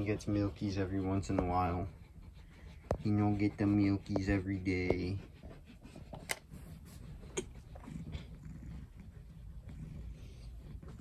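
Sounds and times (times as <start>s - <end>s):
cat purring: 7.4s - 11.0s.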